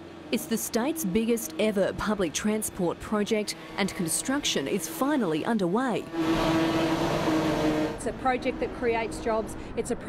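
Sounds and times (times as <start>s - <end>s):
train motor hum: 0.1s - 9.8s.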